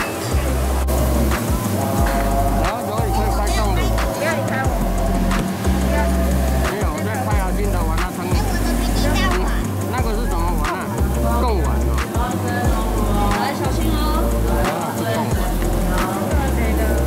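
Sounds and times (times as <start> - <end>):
background music with bass and melody: 0.0 - 17.0.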